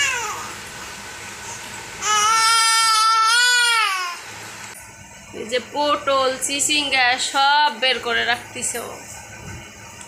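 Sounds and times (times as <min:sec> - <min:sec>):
baby crying: 0:00.0 - 0:00.5, 0:02.0 - 0:04.2.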